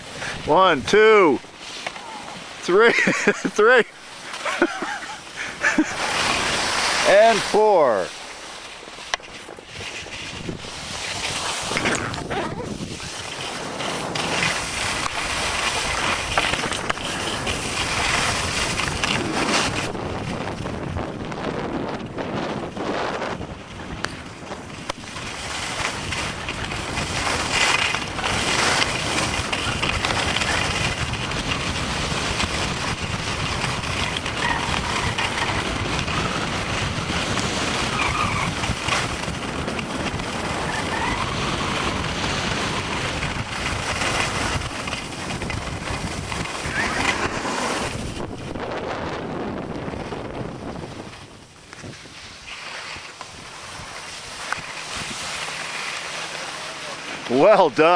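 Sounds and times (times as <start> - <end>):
skis hissing on snow: 1.5 - 20.0, 40.4 - 48.2, 50.6 - 57.9
wind buffeting microphone: 9.4 - 56.0.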